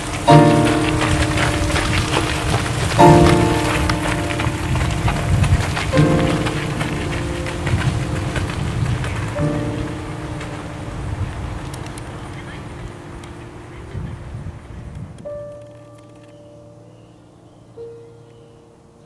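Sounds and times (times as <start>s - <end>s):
piano chords: 0.0s - 19.0s
steady rough hiss: 0.0s - 19.0s.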